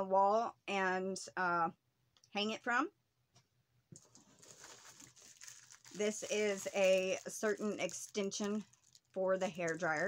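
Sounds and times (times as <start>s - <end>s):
plastic bag crinkling: 4.0s - 10.0s.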